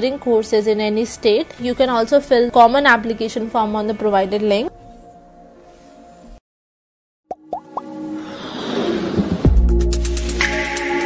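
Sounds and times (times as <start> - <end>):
faint background music: 0.0 - 6.4.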